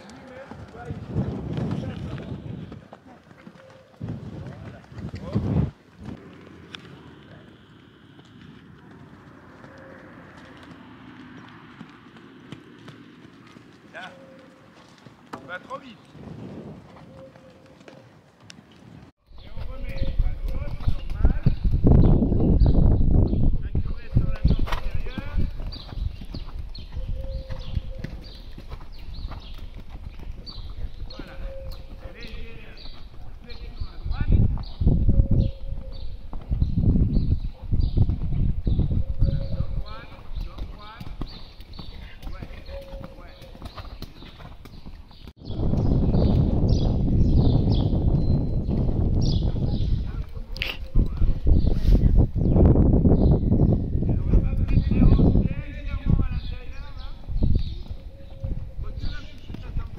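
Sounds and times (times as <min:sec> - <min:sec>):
wind rumble on microphone: 0:00.0 - 0:03.2, 0:04.0 - 0:13.0, 0:15.7 - 0:17.4, 0:18.9 - 0:59.9
horse hoofbeats on sand: 0:00.0 - 0:22.1, 0:24.1 - 0:49.8, 0:55.8 - 0:59.9.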